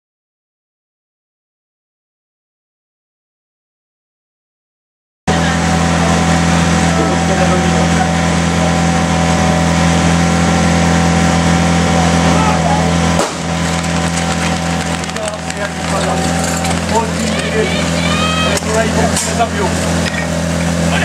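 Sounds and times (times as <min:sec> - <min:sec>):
crowd voices: 0:05.3 - 0:21.0
fire pump engine running: 0:05.3 - 0:21.0.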